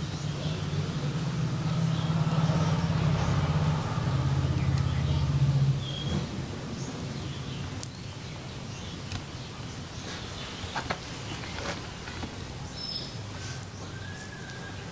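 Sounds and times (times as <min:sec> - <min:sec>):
low engine hum: 0:00.0 - 0:14.9
faint bird chirps: 0:12.6 - 0:14.9.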